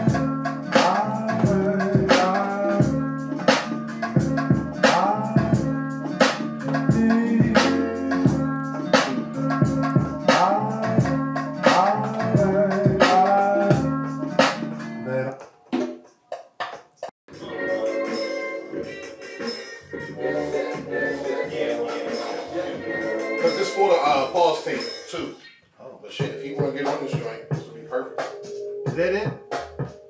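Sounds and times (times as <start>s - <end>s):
drum hits: 0.1s - 8.4s.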